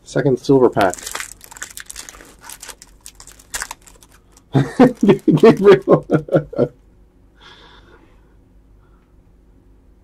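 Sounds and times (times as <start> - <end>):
foil wrapper crinkling: 0.6 - 6.4.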